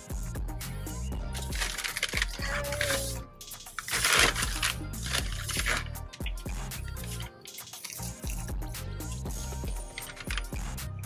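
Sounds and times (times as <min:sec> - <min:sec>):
person chewing fried food: 0:04.4 - 0:08.5.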